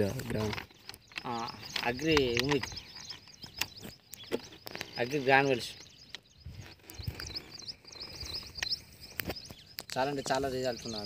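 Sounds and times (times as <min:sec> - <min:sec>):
small birds chirping: 0:00.0 - 0:11.0
sharp clicks: 0:00.2 - 0:10.2.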